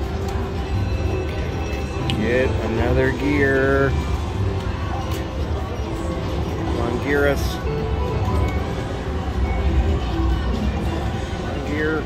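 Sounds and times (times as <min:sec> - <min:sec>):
slot machine music: 0:00.0 - 0:12.0.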